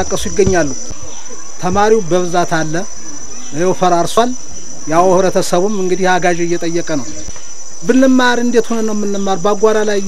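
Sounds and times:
crickets chirping drone: 0:00.0 - 0:10.0.

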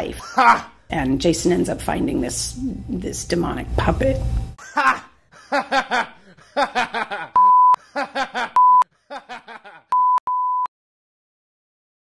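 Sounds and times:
censor bleep: 0:07.4 - 0:07.8, 0:08.6 - 0:08.8, 0:10.0 - 0:10.7.

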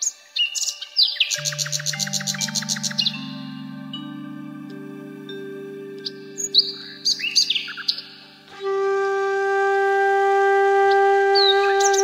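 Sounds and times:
birds chirping: 0:00.0 - 0:08.9, 0:10.9 - 0:12.0
soft musical drone: 0:00.0 - 0:12.0
bamboo flute long note: 0:01.4 - 0:12.0.

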